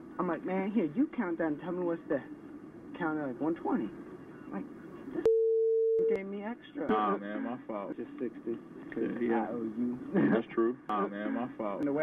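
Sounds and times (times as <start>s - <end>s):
censor bleep tone: 5.2s - 6.2s.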